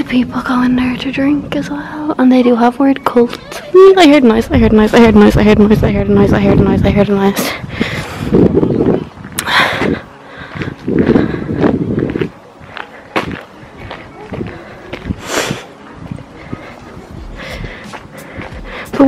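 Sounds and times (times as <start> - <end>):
wind rushing on microphone: 4.2 - 19.0
footsteps on gravel: 9.2 - 19.0.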